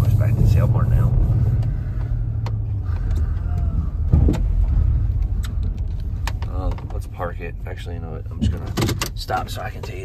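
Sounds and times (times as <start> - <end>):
engine and road rumble: 0.0 - 10.0.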